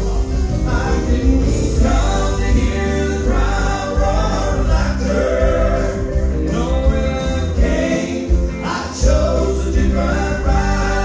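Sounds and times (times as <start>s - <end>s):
steady low bass accompaniment: 0.0s - 11.0s
male vocal trio singing in harmony: 0.2s - 11.0s.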